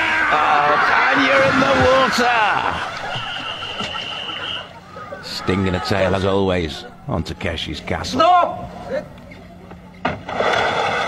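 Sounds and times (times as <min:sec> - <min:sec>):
board scraping down ramp: 0:10.1 - 0:11.0.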